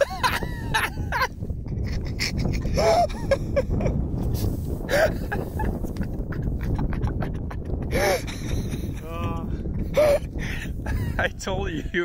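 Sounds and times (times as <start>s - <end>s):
people laughing: 0.0s - 3.9s, 4.9s - 10.2s.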